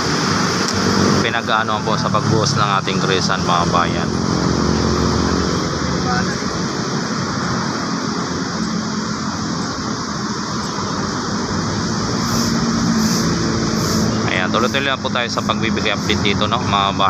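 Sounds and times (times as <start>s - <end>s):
low engine hum: 0.0s - 17.0s.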